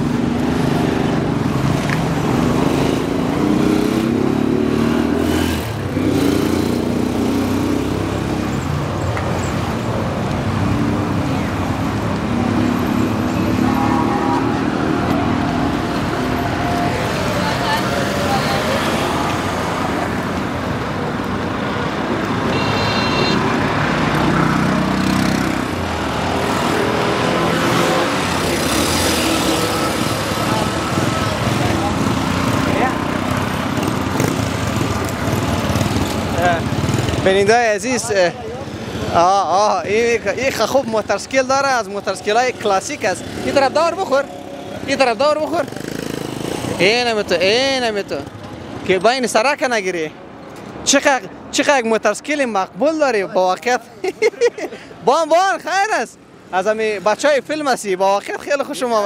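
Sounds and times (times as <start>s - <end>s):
vehicle engines and passing traffic: 0.0s - 59.0s
people's voices: 10.8s - 21.5s, 26.4s - 34.4s.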